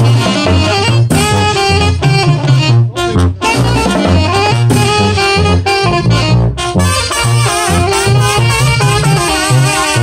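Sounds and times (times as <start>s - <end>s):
snare drums: 0.0s - 2.7s, 3.4s - 6.0s
bass drum thumping: 0.0s - 10.0s
saxophones and trumpets: 0.0s - 10.0s.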